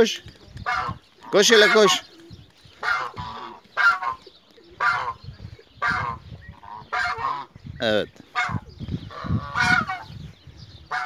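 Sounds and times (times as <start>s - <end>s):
geese honking: 0.7s - 2.1s, 2.8s - 4.2s, 4.8s - 5.2s, 5.8s - 7.6s, 8.3s - 10.1s.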